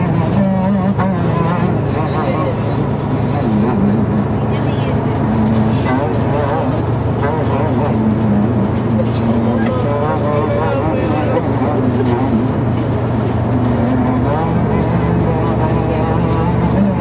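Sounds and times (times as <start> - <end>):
coach engine drone: 0.0 - 17.0
man talking over speakers: 5.7 - 8.2, 8.8 - 12.3.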